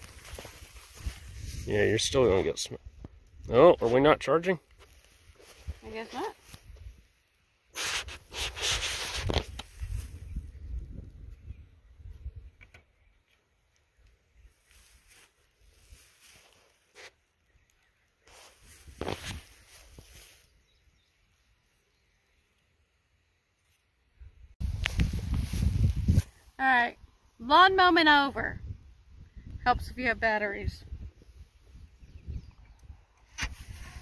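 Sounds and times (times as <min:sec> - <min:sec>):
rustling: 0:07.7 - 0:10.2, 0:14.5 - 0:17.2, 0:18.2 - 0:20.6
wind buffeting microphone: 0:09.2 - 0:12.6, 0:24.6 - 0:26.3, 0:28.4 - 0:34.0.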